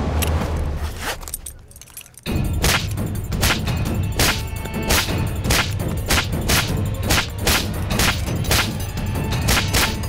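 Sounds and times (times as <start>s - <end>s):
metallic jangle: 1.2s - 3.2s.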